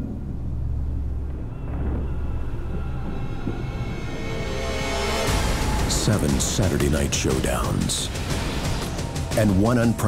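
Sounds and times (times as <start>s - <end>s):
deep steady rumble: 0.0s - 10.0s.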